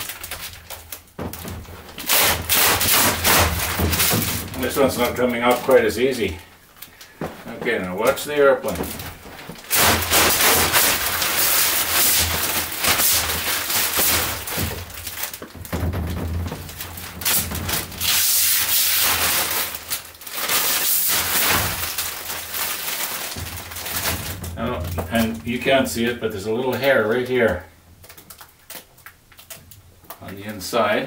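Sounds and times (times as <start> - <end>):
plastic film peeling and crackling: 0.0 - 31.0.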